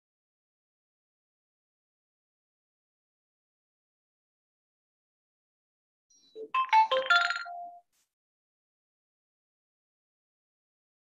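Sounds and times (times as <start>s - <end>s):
electronic ringtone jingle: 6.4s - 7.8s.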